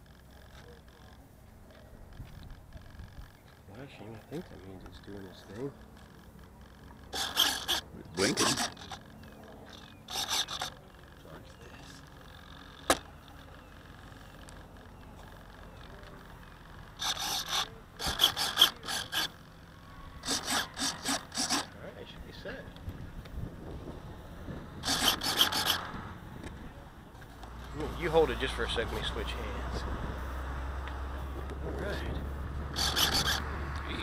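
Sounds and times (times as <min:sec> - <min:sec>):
hand scraping against camera: 0:32.7 - 0:33.5.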